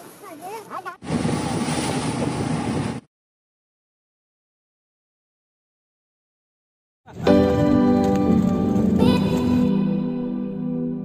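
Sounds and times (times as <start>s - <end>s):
vehicle road and wind noise: 1.0s - 3.1s.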